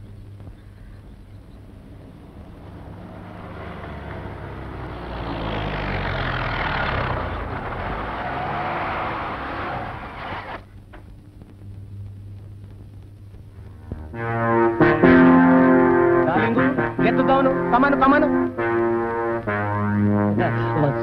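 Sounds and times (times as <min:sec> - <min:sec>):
vehicles driving past: 0:01.2 - 0:10.6, 0:14.1 - 0:21.0.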